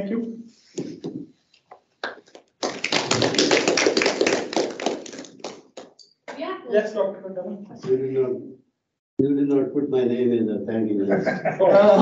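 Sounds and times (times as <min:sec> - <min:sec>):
audience applauding: 0:02.0 - 0:05.9.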